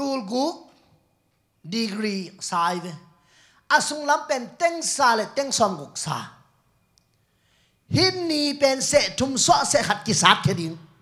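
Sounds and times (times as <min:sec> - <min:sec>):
man speaking: 0:00.0 - 0:00.7, 0:01.6 - 0:03.1, 0:03.7 - 0:06.4, 0:07.9 - 0:11.0.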